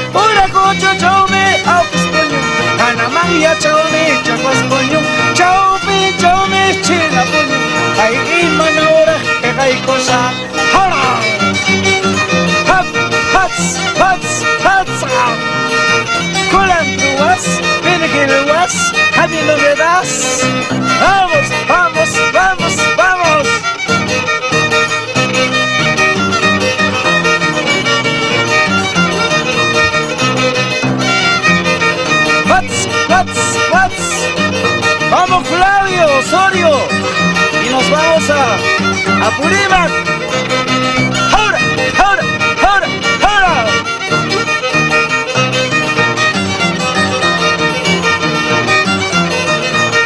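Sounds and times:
plucked harp bass notes: 0.0 - 50.0
violin melody: 0.0 - 50.0.

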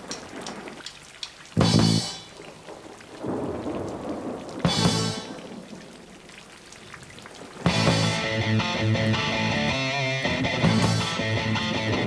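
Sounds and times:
rock band chord hit: 7.7 - 12.0.

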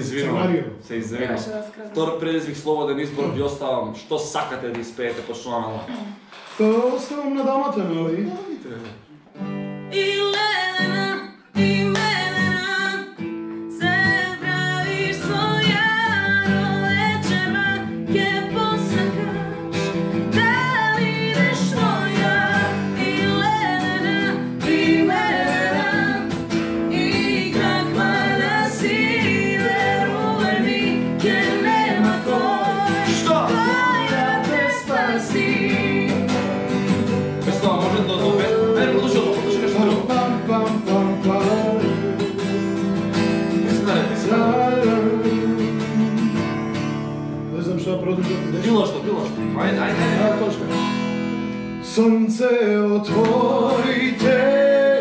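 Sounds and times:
acoustic guitar strumming: 0.0 - 1.6, 5.3 - 55.0
man singing: 0.0 - 1.6, 21.3 - 42.5, 43.5 - 46.5, 51.8 - 55.0
woman singing: 9.9 - 36.7, 38.2 - 42.6, 43.7 - 46.3, 53.1 - 55.0.

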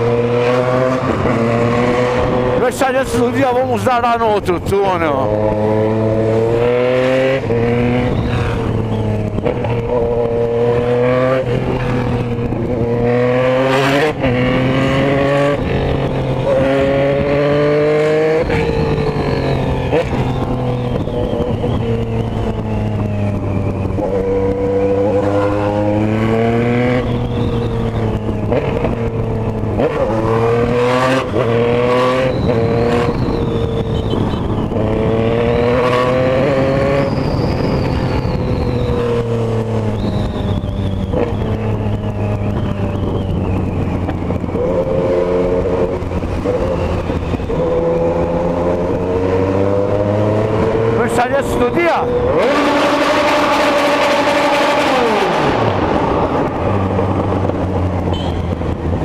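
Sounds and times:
motorcycle engine revving: 0.0 - 59.0
loud rushing in tunnel: 52.0 - 59.0.

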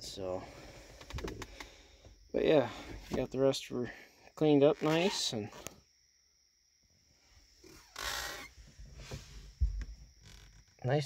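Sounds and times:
low thumps of phone handling: 9.6 - 10.0.

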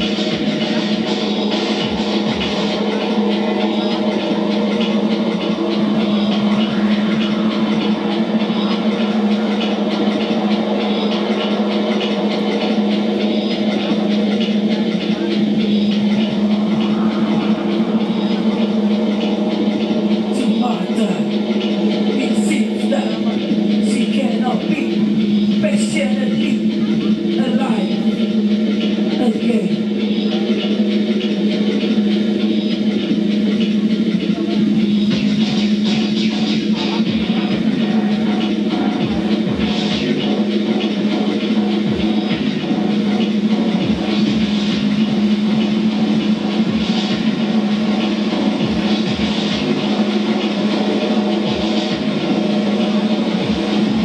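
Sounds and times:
electronic synthesizer music: 0.0 - 54.0.

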